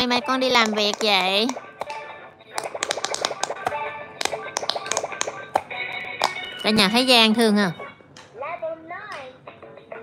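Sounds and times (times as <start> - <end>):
toy bubble buttons clicking: 0.0 - 6.8.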